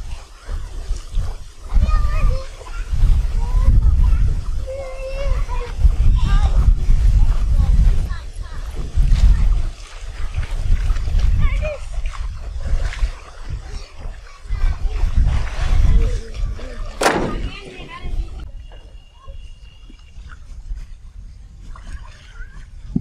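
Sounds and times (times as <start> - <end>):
voices talking: 0.0 - 10.0, 11.1 - 20.4.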